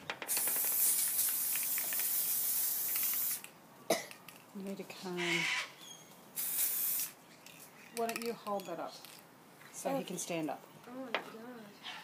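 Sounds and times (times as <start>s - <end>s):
aerosol spray burst: 0.3s - 3.5s, 6.4s - 7.2s.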